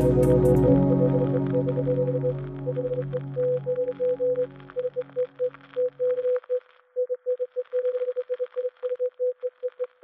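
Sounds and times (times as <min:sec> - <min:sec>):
synthesizer chords: 0:00.0 - 0:05.7.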